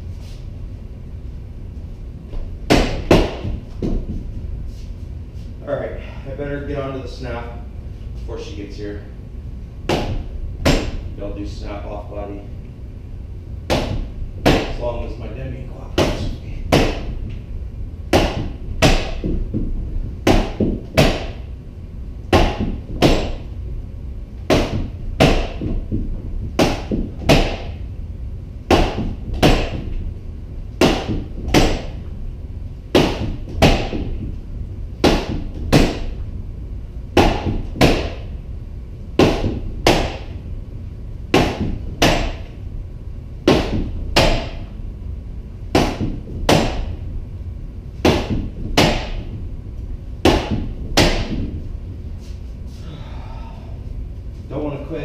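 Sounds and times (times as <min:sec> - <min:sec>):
sword whacking wooden post: 0:18.1 - 0:19.4, 0:20.2 - 0:21.4, 0:22.3 - 0:23.5, 0:24.5 - 0:25.8, 0:26.6 - 0:27.8, 0:28.7 - 0:30.0, 0:30.8 - 0:32.0, 0:32.9 - 0:34.2, 0:35.0 - 0:36.2, 0:37.2 - 0:38.3, 0:39.2 - 0:40.4, 0:41.3 - 0:42.5, 0:43.4 - 0:44.7, 0:45.8 - 0:47.0, 0:48.0 - 0:49.4, 0:50.2 - 0:51.6.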